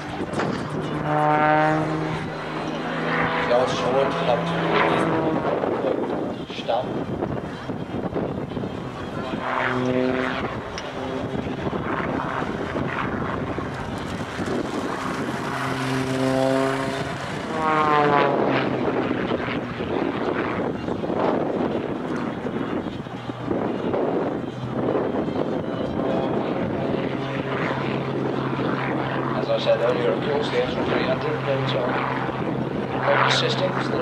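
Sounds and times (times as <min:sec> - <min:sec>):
plane engine and propeller: 0:00.0 - 0:34.0.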